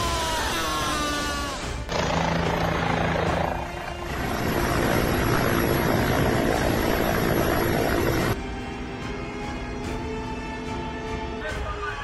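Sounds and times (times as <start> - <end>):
helicopter rotor and engine: 1.9 - 8.4.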